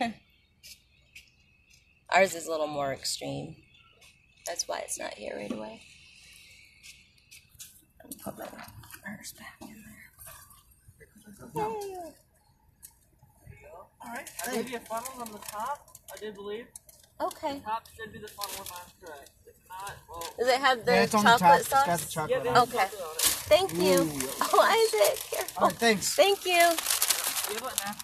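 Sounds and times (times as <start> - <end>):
quiet talking: 8.0 - 12.2, 17.2 - 28.0
paper food bag rustling: 20.2 - 28.0.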